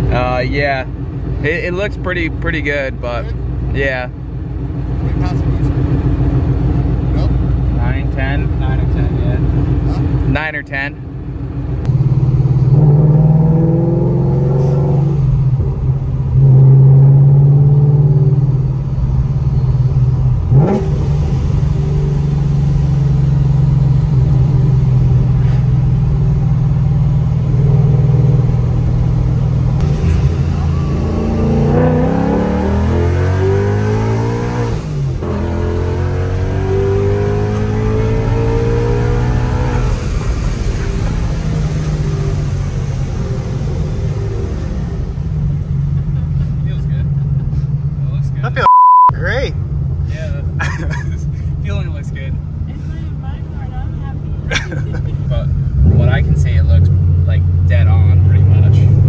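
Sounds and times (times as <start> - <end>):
car engine from inside cabin: 0.0 - 59.0.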